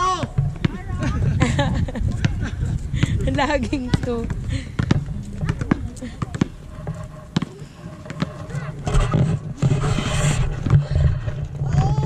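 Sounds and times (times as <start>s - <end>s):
basketball bouncing on asphalt: 0.0s - 1.4s, 2.0s - 12.0s
rough rushing noise: 6.5s - 12.0s.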